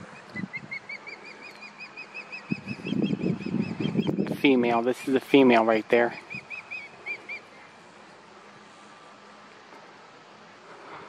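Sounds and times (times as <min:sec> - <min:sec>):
osprey whistled calls: 0:00.0 - 0:04.3, 0:06.0 - 0:07.7.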